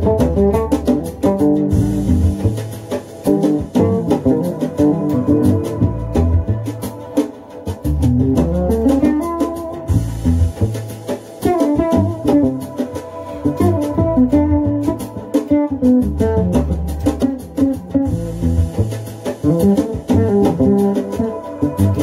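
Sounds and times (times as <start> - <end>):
fretless bass solo: 0.0 - 7.0, 7.7 - 22.0.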